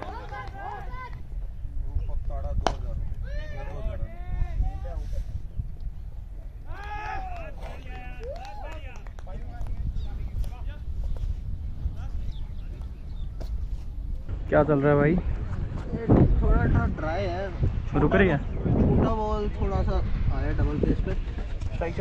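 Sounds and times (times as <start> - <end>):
wind on microphone: 0.0 - 22.0
distant people shouting: 6.6 - 9.0.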